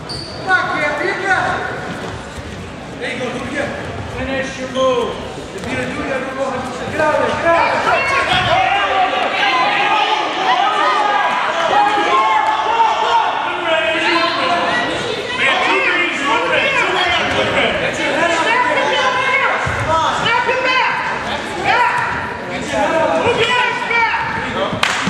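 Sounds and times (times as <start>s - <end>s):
people shouting: 7.2s - 24.3s.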